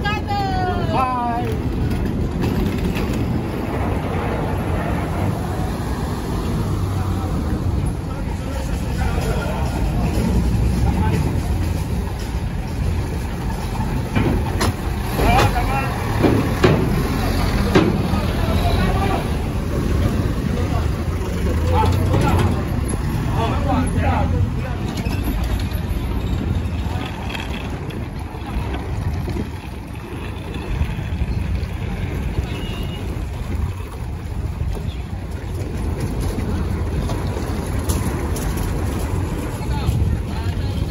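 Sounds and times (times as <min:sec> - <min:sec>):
vehicle engines running: 0:00.0 - 0:40.9
knocks and clanks on metal ramp: 0:14.0 - 0:18.3.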